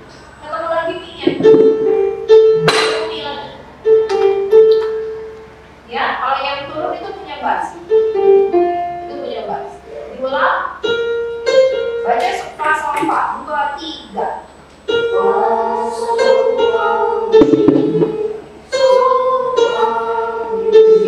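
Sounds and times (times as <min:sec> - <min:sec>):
electronic keyboard playing: 0:01.2 - 0:03.6, 0:17.4 - 0:18.5
person singing: 0:15.1 - 0:21.0.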